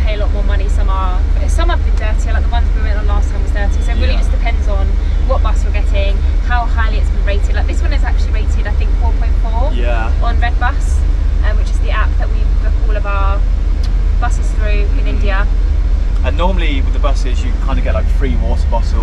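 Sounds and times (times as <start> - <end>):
bus engine low rumble: 0.0 - 19.0
voices talking: 0.0 - 19.0.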